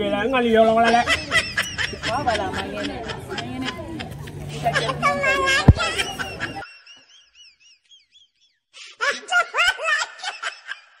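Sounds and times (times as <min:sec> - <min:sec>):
person laughing: 0:00.9 - 0:07.8.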